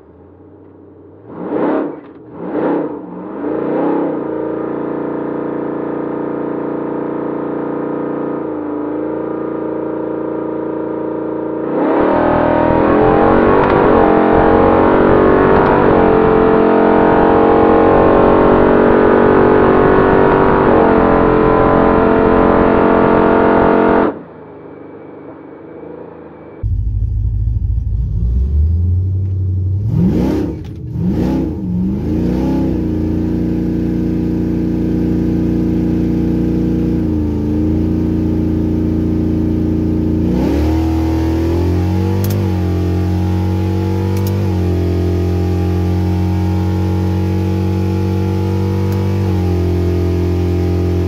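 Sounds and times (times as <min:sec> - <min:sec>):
engine revving: 0:01.1 - 0:24.3, 0:25.7 - 0:51.0
engine full-throttle pull: 0:40.1 - 0:51.0.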